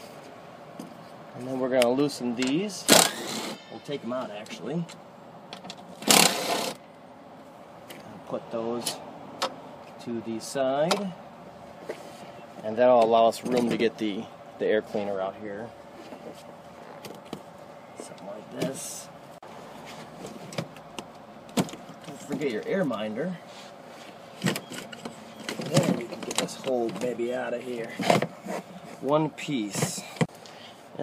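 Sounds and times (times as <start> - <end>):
rough scraping rustle: 11.7 - 12.4, 18.6 - 20.5, 22.1 - 31.0.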